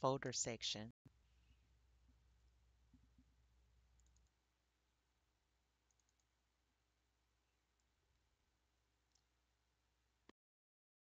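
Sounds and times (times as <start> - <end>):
computer mouse clicks: 3.9 - 4.4, 5.8 - 6.4, 9.1 - 9.3.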